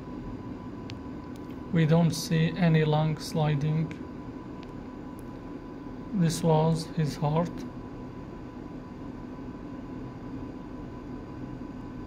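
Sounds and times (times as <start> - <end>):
faint high whine: 0.0 - 12.0
room hum and hiss: 0.0 - 12.0.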